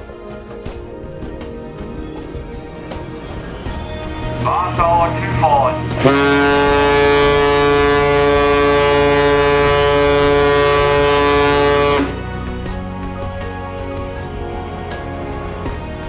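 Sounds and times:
ship's horn blast: 4.4s - 12.5s.

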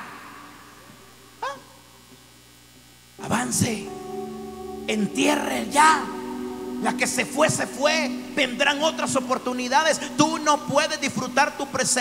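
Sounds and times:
low steady hum: 0.0s - 12.0s
hall reverberation: 3.2s - 12.0s.

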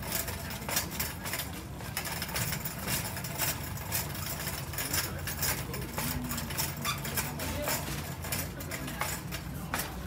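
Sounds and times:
cart clicks and knocks: 0.0s - 10.0s
shopping cart wheels rattling: 0.0s - 10.0s.

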